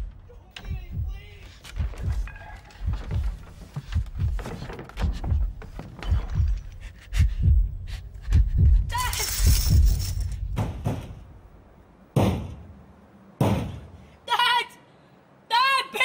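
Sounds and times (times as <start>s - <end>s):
heavy thumps and thuds: 0.0s - 8.9s, 9.5s - 11.3s.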